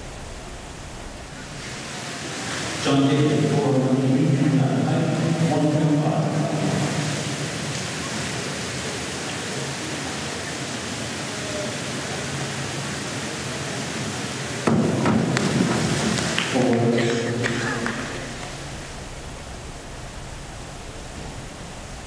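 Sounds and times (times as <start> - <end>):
indoor pool hall noise: 0.0 - 22.0
springboard knocks: 14.6 - 16.4
diver entry splash: 14.6 - 22.0.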